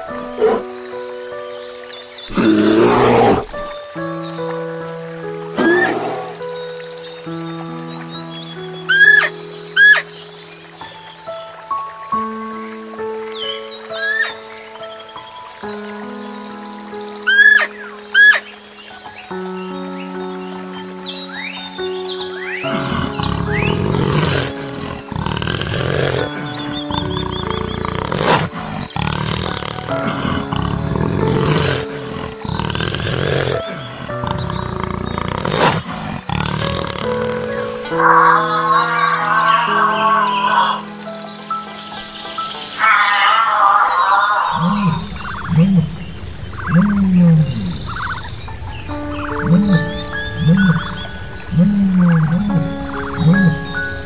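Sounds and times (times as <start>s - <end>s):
background music: 0.0s - 54.0s
animal roar-like calls: 2.3s - 3.7s, 5.6s - 6.4s, 22.6s - 40.9s, 42.8s - 54.0s
animal warbling calls: 2.3s - 3.7s, 5.6s - 6.5s, 22.4s - 41.0s, 42.6s - 54.0s.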